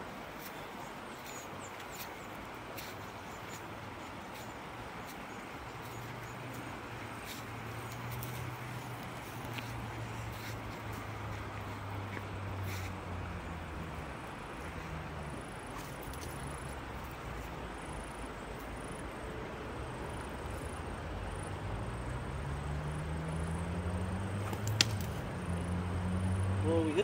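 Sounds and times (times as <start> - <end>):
vehicle engine drone: 2.7 - 27.0.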